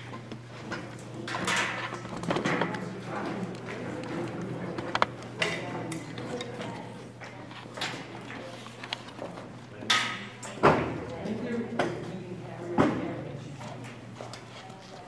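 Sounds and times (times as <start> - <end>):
indistinct chatter: 0.0 - 15.0.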